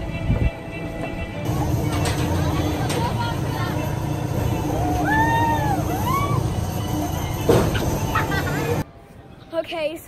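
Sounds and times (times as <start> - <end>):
riders whooping: 4.5 - 8.8.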